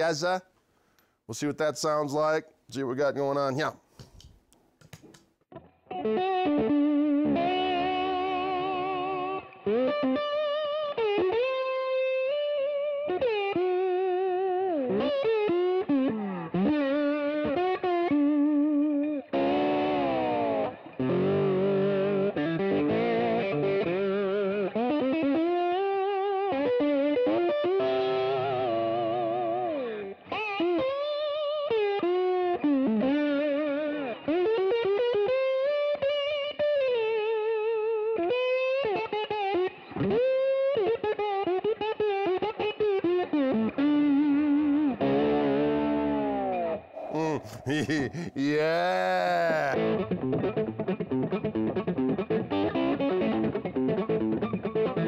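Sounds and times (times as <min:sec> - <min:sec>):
electric guitar lead lines: 0:05.6 - 0:47.2
electric guitar chords: 0:05.6 - 0:55.0.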